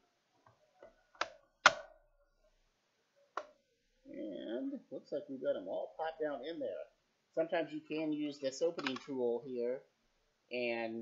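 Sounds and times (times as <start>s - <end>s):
plastic clips snapping into place: 1.2s - 2.0s.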